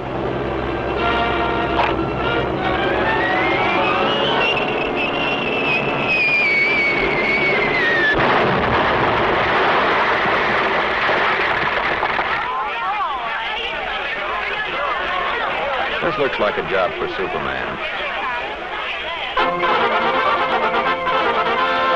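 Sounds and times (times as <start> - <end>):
crowd voices: 0.0 - 21.9
cartoon falling bomb whistle: 3.1 - 8.5
explosion rumble: 4.7 - 12.6.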